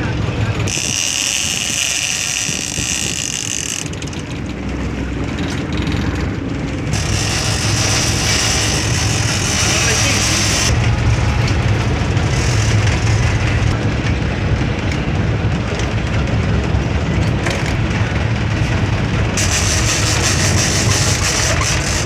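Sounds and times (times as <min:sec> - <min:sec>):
boat engine rumbling: 0:00.0 - 0:22.0
wind: 0:00.0 - 0:22.0.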